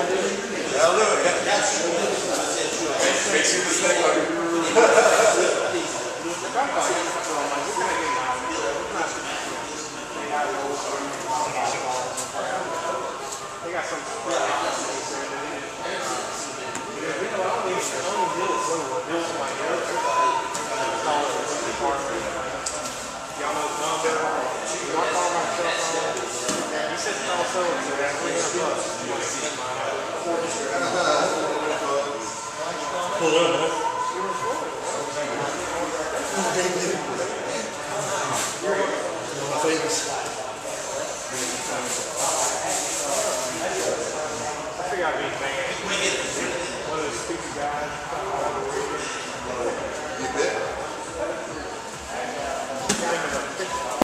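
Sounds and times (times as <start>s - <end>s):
indistinct talking: 0.0s - 54.0s.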